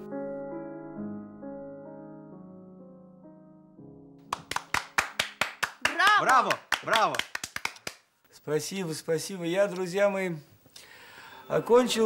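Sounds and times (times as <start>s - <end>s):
piano notes: 0.0s - 5.6s
people clapping: 4.2s - 8.1s
person shouting bravo: 5.9s - 7.2s.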